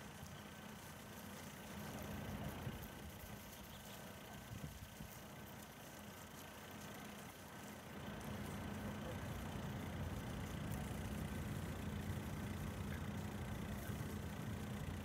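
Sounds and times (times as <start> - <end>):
low mechanical hum: 0.0 - 15.0.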